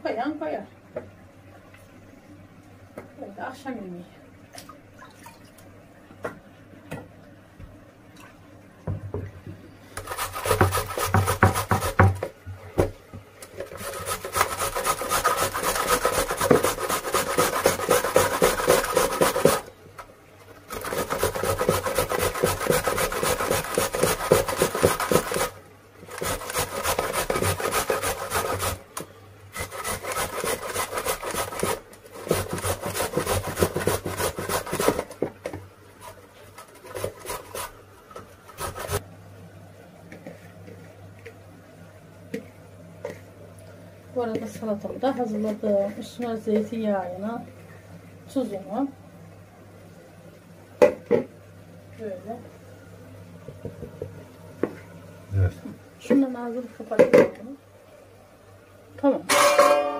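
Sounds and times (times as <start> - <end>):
carrot rasping on grater: 10.0 - 12.1, 13.6 - 19.7, 20.7 - 28.8, 29.5 - 35.2, 36.0 - 37.8, 38.5 - 39.0.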